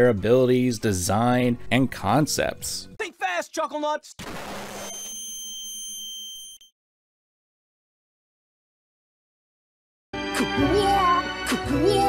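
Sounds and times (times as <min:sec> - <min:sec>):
high-pitched ear ringing: 0:04.8 - 0:06.7.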